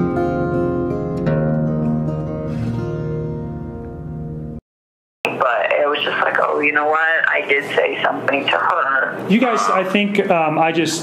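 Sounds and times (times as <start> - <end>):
person talking over telephone: 5.3 - 10.0.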